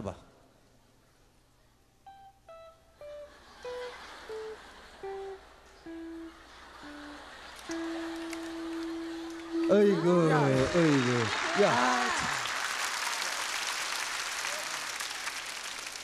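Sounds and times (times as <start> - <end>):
electric guitar notes: 2.0 - 11.4.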